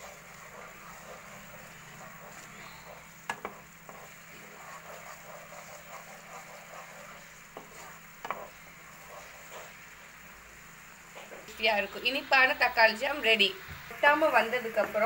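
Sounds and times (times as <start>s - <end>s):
jam sizzling and bubbling: 0.0s - 15.0s
spatula knocking on pan: 3.2s - 4.1s, 7.5s - 8.6s.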